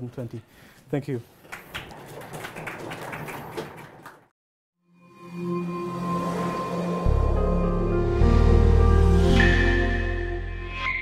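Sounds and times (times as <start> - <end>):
audience applauding: 1.4 - 4.3.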